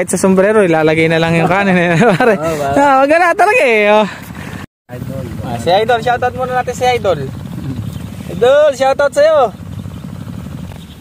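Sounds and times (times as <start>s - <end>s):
people talking and calling out: 0.0s - 10.4s
steady low rumble: 4.2s - 11.0s.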